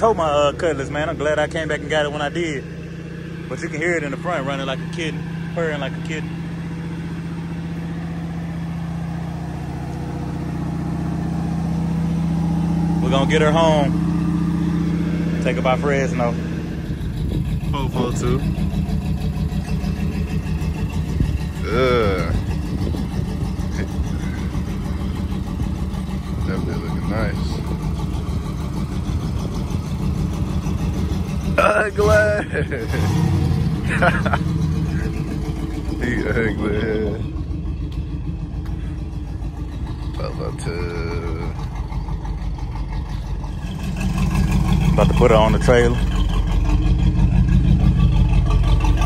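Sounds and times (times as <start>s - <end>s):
car engine idling: 0.0s - 49.0s.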